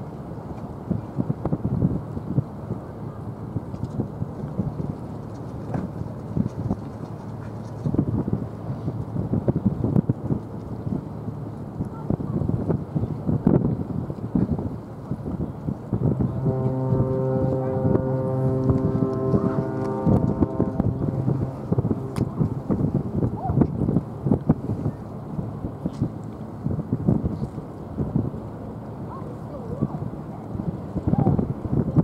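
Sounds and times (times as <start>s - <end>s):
ship horn blast: 15.8s - 26.8s.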